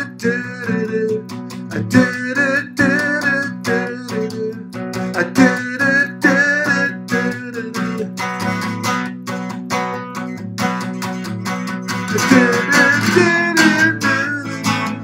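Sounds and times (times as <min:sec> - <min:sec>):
acoustic guitar strumming chords: 0:00.0 - 0:15.0.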